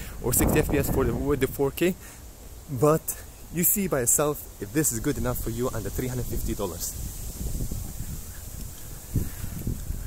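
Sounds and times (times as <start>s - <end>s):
wind rumble on microphone: 0.0s - 1.7s, 4.7s - 10.0s.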